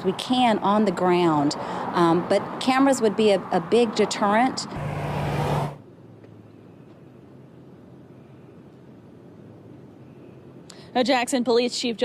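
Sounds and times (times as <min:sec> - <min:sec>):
road traffic engine hum: 0:00.0 - 0:11.1.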